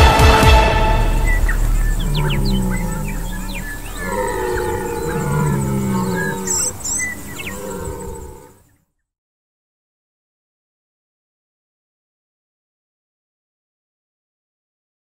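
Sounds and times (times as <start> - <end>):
stag roaring: 0.9 - 8.6
small birds chirping: 1.0 - 8.8.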